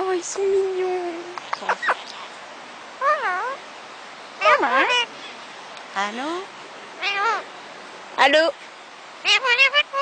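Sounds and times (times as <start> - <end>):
parakeet mimicking human voice: 1.2 - 2.3, 3.0 - 3.6, 4.4 - 5.2, 7.0 - 7.5, 9.2 - 10.0
parakeet squeaks: 1.5 - 2.3, 4.4 - 5.2, 7.0 - 7.5, 9.2 - 10.0.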